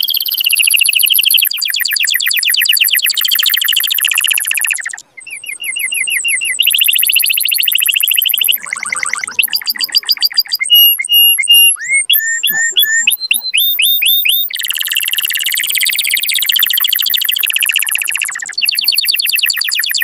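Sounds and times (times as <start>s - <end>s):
canary singing: 0.0s - 20.0s.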